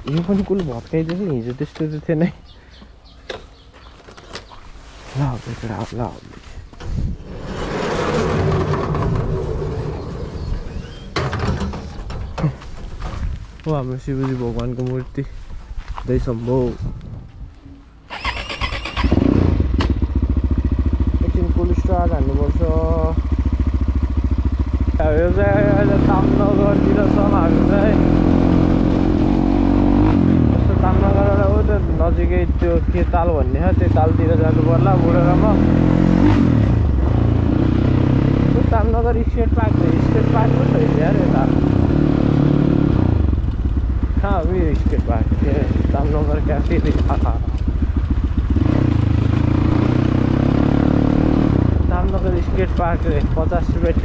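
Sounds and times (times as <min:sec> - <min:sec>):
dirt bike engine revving: 0:07.2 - 0:11.7, 0:18.1 - 0:54.0.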